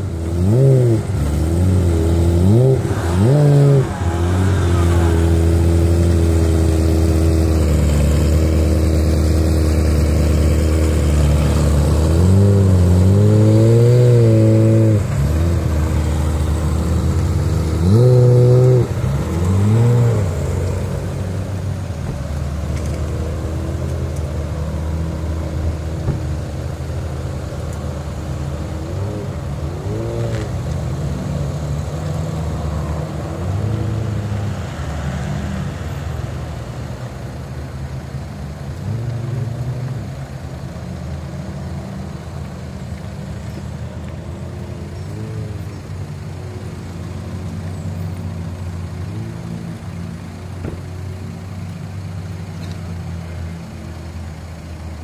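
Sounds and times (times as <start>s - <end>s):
sports car engine idling and revving: 0.0s - 55.0s.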